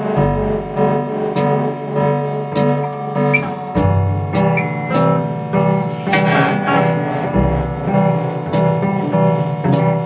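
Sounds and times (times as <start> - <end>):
bass line: 0.0 - 1.0, 3.3 - 9.5
drum and cymbal hits: 3.6 - 10.0
electric guitars sustained chords: 6.0 - 9.4.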